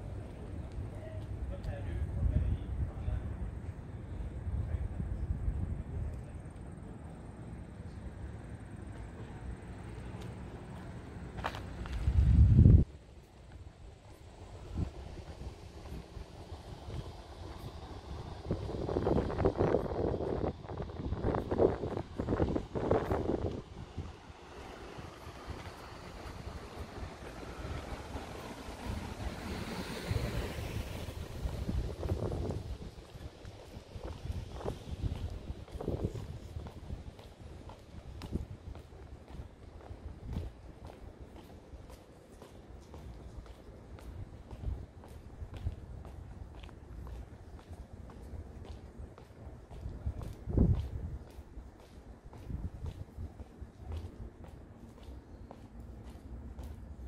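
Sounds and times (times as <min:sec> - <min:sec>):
footsteps on a sidewalk: 0:00.0 - 0:57.0
wind on microphone: 0:11.9 - 0:13.0, 0:14.4 - 0:41.0, 0:43.3 - 0:54.6.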